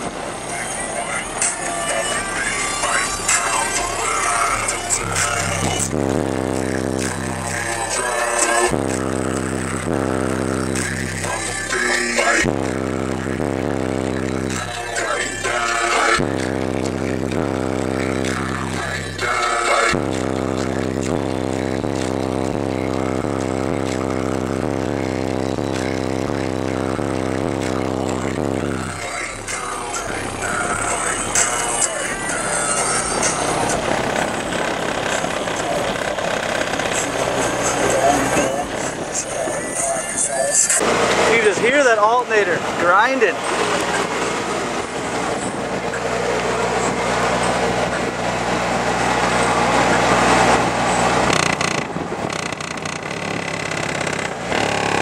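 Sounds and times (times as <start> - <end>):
bass-heavy music through subwoofers: 0.0 - 55.0.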